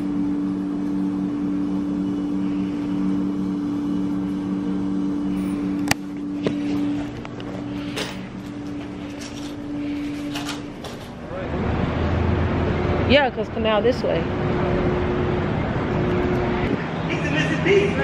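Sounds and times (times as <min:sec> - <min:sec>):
machine hum: 0:00.0 - 0:18.0.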